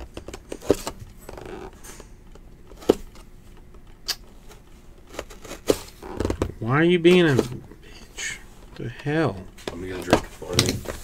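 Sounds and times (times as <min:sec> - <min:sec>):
man speaking: 0:06.6 - 0:11.0.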